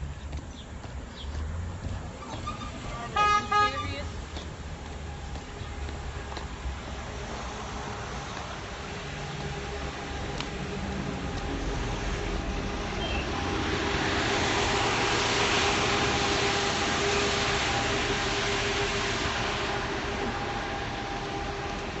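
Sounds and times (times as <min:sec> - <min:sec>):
vehicle passing by: 0:01.0 - 0:22.0.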